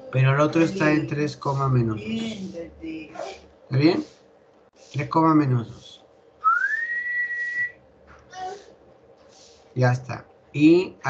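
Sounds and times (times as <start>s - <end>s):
person whistling: 6.4s - 7.8s.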